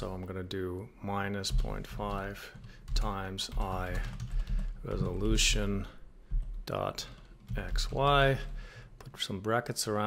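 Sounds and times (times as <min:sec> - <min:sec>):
man speaking: 0:00.0 - 0:04.2, 0:04.8 - 0:06.0, 0:06.6 - 0:10.0
typing on computer keyboard: 0:01.4 - 0:05.5.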